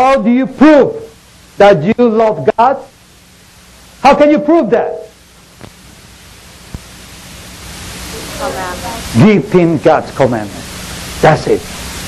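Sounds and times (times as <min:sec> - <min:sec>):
microphone room noise hiss: 0:00.0 - 0:12.0
faint voice: 0:08.1 - 0:09.2.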